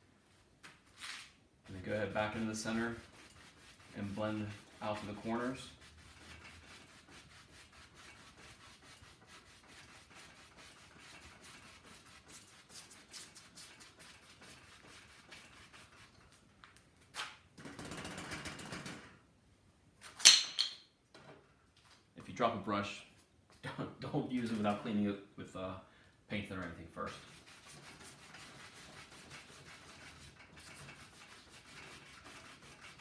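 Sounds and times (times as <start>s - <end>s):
brush scrubbing on canvas: 1.0s - 16.4s, 27.0s - 33.0s.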